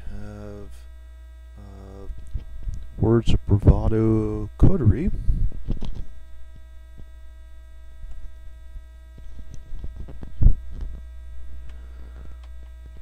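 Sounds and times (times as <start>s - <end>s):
low electrical mains hum: 0.0s - 13.0s.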